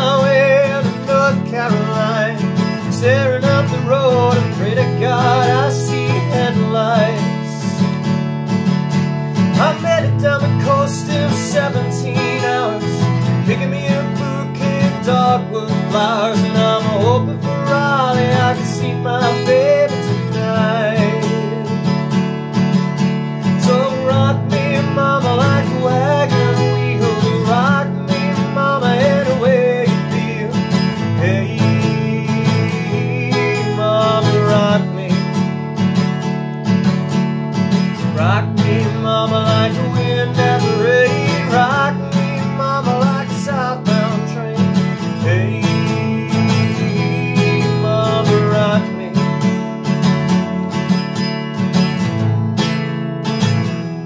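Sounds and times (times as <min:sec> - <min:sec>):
man singing: 0:00.0 - 0:08.1, 0:09.3 - 0:22.2, 0:22.8 - 0:36.3, 0:37.8 - 0:52.0
acoustic guitar strumming: 0:00.0 - 0:54.0.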